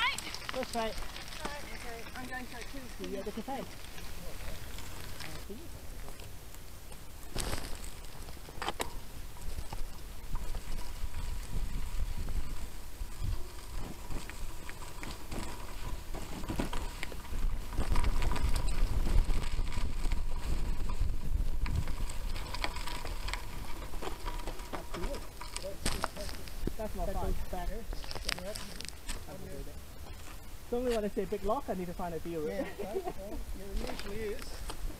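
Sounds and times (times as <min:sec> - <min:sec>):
bike tyre and wind rumble: 0:00.0 - 0:34.9
bike knocks and rattles: 0:07.3 - 0:28.5.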